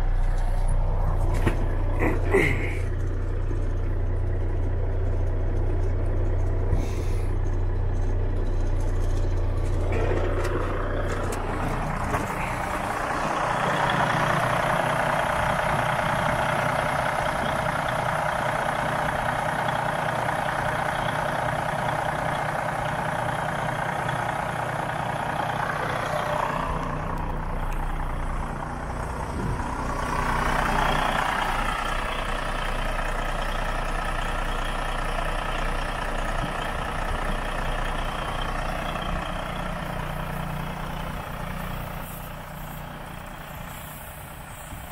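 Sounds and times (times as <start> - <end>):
diesel engine idling: 0.0 - 44.9
engine hiss: 36.9 - 44.9.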